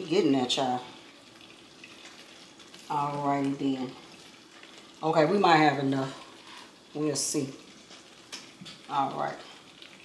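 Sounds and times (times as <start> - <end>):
woman's voice: 0.0 - 1.0, 2.9 - 4.0, 5.0 - 6.2, 7.0 - 7.6, 8.9 - 9.5
meat frying in a skillet: 0.0 - 10.0.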